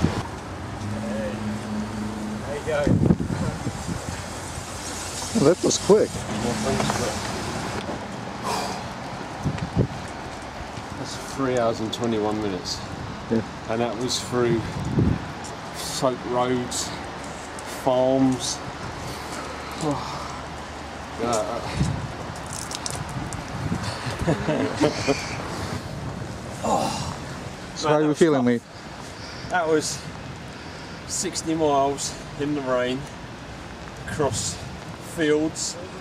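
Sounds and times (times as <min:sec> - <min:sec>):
outdoor background noise: 0:00.0 - 0:36.0
low voices: 0:15.7 - 0:22.0
water spattering: 0:22.4 - 0:23.6.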